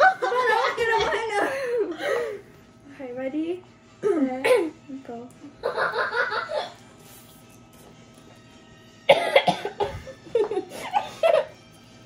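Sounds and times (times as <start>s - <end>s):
girls laughing: 0.0s - 2.4s, 5.6s - 6.8s
girls coughing hard: 4.0s - 4.8s, 9.1s - 11.5s.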